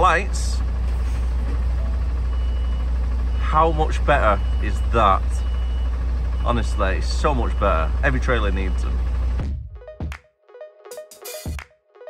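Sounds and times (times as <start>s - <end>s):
diesel engine idling: 0.0s - 9.5s.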